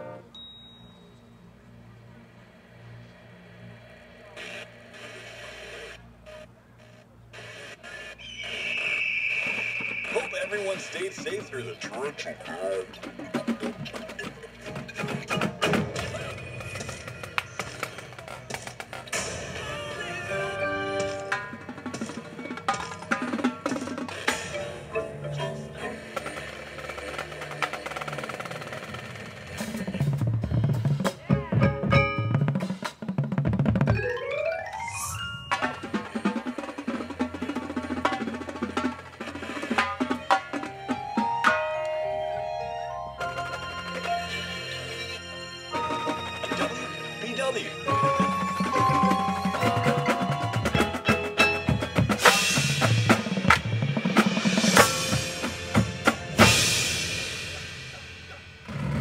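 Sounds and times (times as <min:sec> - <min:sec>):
noisy broken radio sound: 0:04.1 - 0:19.2
loud steady high tone: 0:07.4 - 0:12.7
fast drum strokes: 0:09.4 - 0:19.9, 0:25.9 - 0:34.0, 0:47.9 - 0:59.0
low held ensemble notes: 0:40.5 - 0:58.9.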